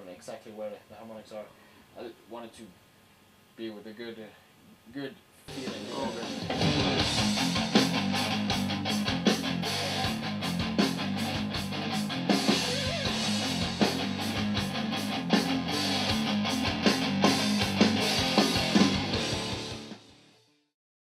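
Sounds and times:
steady drum beat: 0:05.5 - 0:20.1
electric guitar rock playing: 0:05.5 - 0:20.6.

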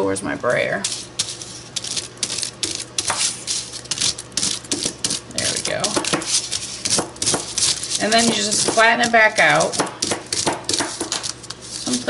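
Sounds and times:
aluminium foil crinkling: 0:00.8 - 0:12.0.

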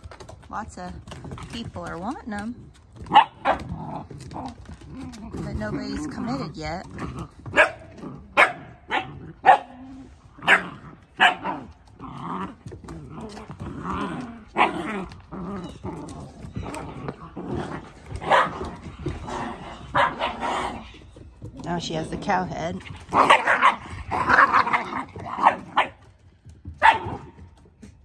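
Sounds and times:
puppies growling: 0:00.0 - 0:28.0
puppies barking: 0:03.0 - 0:04.8, 0:05.4 - 0:12.1, 0:12.8 - 0:21.4, 0:22.9 - 0:27.5.

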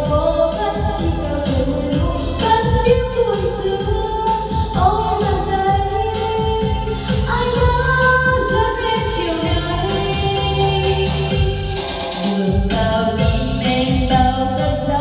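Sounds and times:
karaoke song over loudspeakers: 0:00.0 - 0:15.0
steady bass line: 0:00.0 - 0:15.0.

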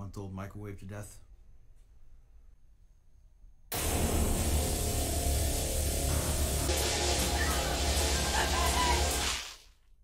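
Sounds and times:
dramatic horror film music: 0:03.8 - 0:09.3.

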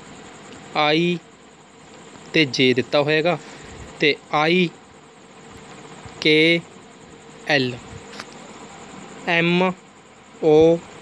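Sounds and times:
faint hum: 0:00.0 - 0:11.0
steady background hiss: 0:00.0 - 0:11.0
man calling out letters: 0:00.7 - 0:01.3, 0:04.0 - 0:04.8, 0:06.2 - 0:06.7, 0:07.4 - 0:07.9, 0:09.2 - 0:09.8, 0:10.4 - 0:10.9.

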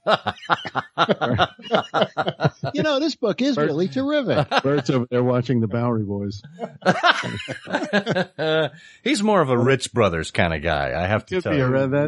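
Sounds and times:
quick chuckling laughter: 0:00.0 - 0:02.8.

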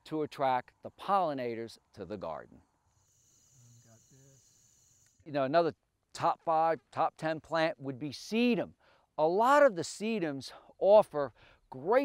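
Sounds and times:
high-pitched chirring of insects: 0:02.8 - 0:05.3.

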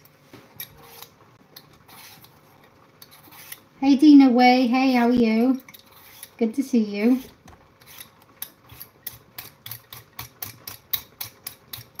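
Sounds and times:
peeler scraping potato skin: 0:00.5 - 0:03.7, 0:05.5 - 0:12.0.

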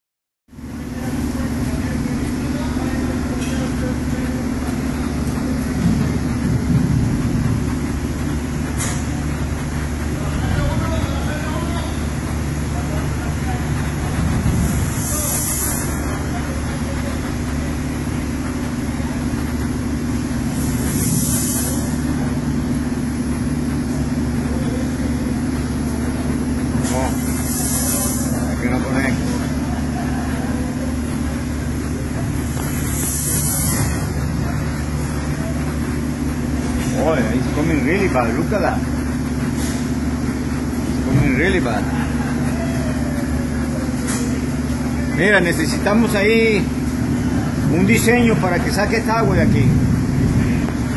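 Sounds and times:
factory machinery drone: 0:00.5 - 0:50.9
air hiss: 0:14.9 - 0:16.2, 0:20.5 - 0:22.3, 0:27.1 - 0:28.5, 0:32.7 - 0:34.0
faint voices: 0:39.6 - 0:46.0.

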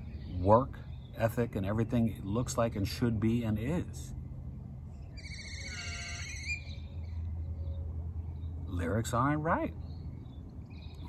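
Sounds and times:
high buzzy bird call: 0:05.0 - 0:07.2.

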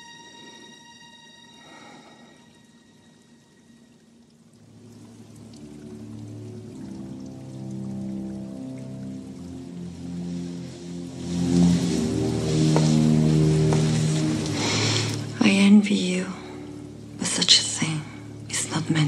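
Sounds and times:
music with sustained low notes: 0:00.0 - 0:19.0
rushing noise: 0:10.3 - 0:15.4.

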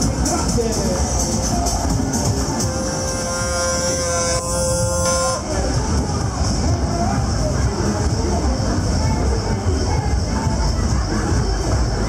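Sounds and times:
parade music: 0:00.0 - 0:06.6
horn long steady note: 0:01.8 - 0:05.8.

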